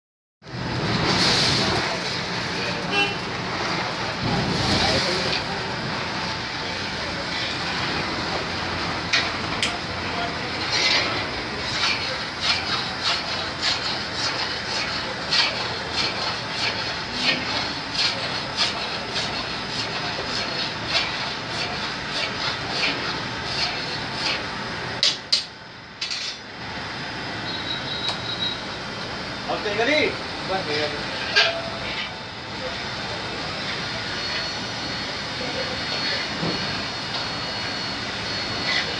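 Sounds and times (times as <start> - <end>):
stoves and machinery running: 0.4 - 38.9.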